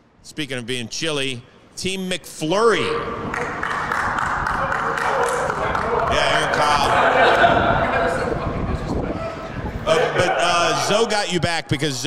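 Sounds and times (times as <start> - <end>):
men talking and calling out: 2.8 - 12.0
hand claps: 3.3 - 6.6.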